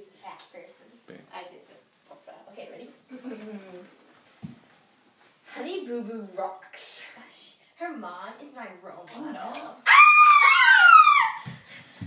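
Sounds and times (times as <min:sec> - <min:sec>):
girl screaming: 0:09.8 - 0:11.5.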